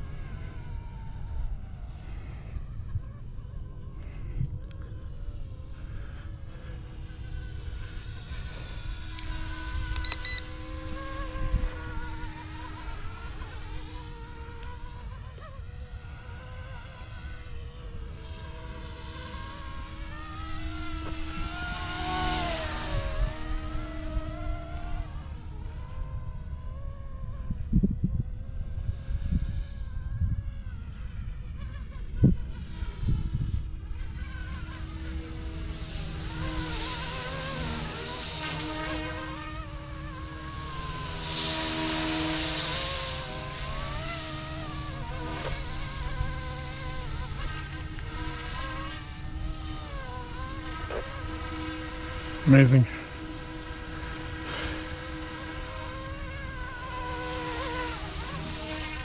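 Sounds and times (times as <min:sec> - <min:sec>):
rc helicopter rotor whine: 0:00.0 - 0:59.0.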